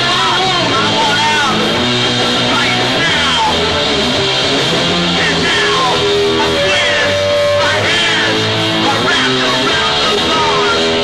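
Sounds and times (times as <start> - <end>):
bass guitar: 0.0 - 11.0
distorted electric guitar: 0.0 - 11.0
drums: 0.0 - 11.0.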